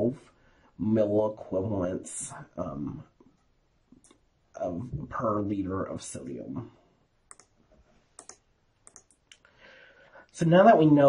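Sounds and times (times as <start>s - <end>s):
faint computer clicks: 7.3s - 7.6s, 8.2s - 9.5s.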